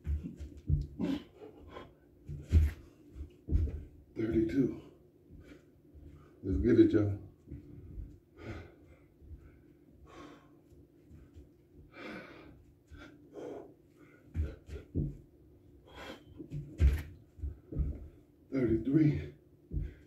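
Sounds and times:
man breathing hard: 7.8s - 15.1s, 15.8s - 16.6s, 19.1s - 20.0s.

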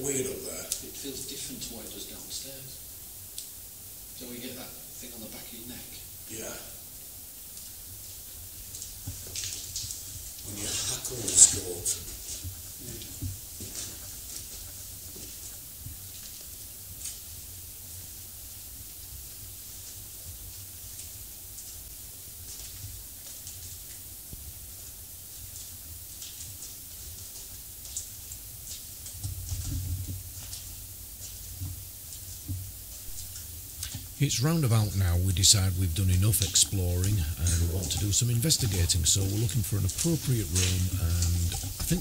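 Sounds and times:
steady high hiss: 0.0s - 42.0s
faint clicks and taps: 35.7s - 42.0s.

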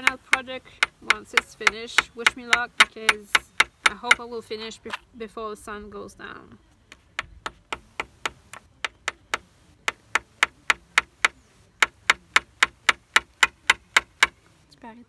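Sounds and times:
hammer tapping nails into wood: 0.0s - 4.3s, 6.9s - 14.4s.

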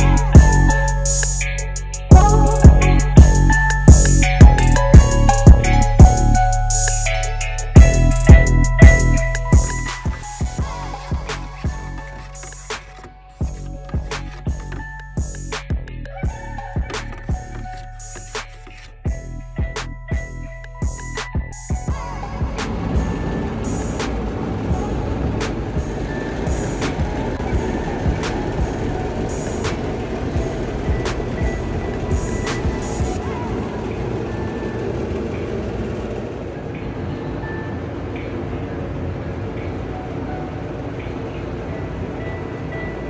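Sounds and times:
music with heavy beat: 0.0s - 33.2s.

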